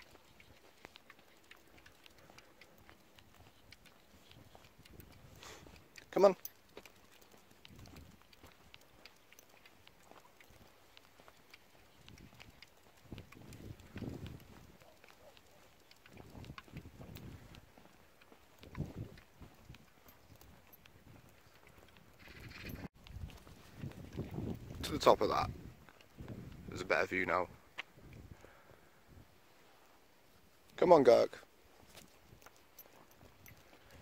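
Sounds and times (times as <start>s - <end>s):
footsteps on tarmac: 0.0s - 22.3s
small dog trotting: 0.0s - 26.6s, 31.7s - 34.0s.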